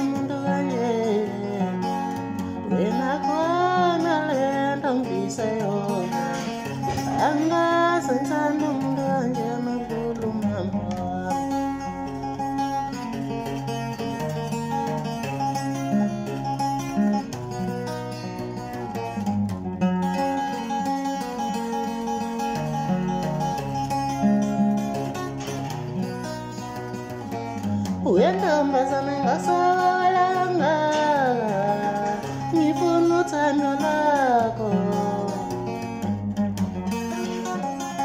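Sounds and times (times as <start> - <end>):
man singing: 0.0 - 12.1, 28.0 - 35.8
acoustic guitar chords: 0.0 - 38.0.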